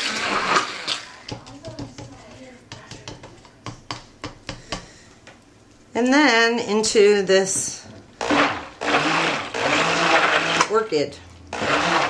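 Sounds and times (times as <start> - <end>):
stick blender blending: 0.0 - 1.2, 8.2 - 10.8, 11.5 - 12.0.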